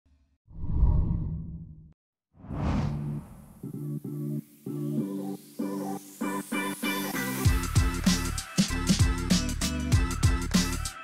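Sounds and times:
low whoosh: 2.4 - 3.6.

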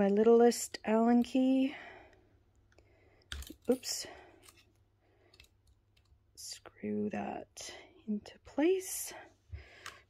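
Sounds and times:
light clicks of small metal parts: 2.6 - 6.2.

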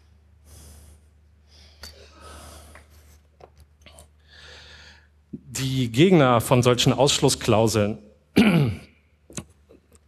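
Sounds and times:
man clearing his throat: 8.4 - 9.0.

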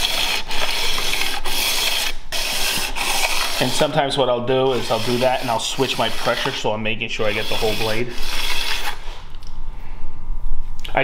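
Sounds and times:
steel scraping on sandpaper: 0.0 - 9.2.

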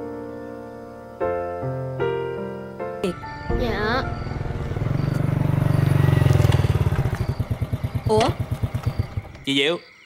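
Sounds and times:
motorbike engine idling: 3.2 - 9.7.

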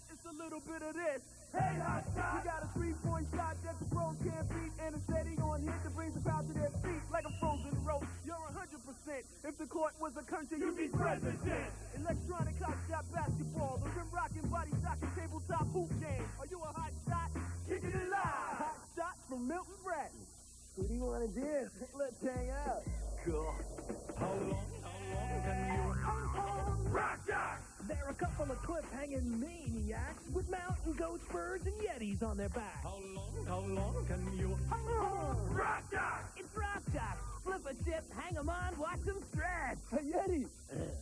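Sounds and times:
low mains hum: 0.0 - 41.0
excited voices from commercial: 22.4 - 27.7
high-pitched squeal: 22.6 - 26.8.

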